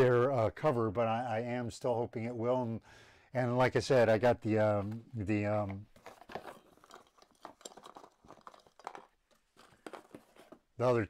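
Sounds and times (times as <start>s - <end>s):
packaging crinkling and rustling: 4.8s - 11.0s.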